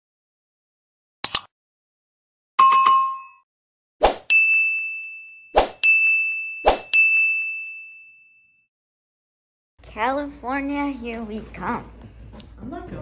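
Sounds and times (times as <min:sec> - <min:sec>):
sharp clicks: 0:01.2 - 0:01.5.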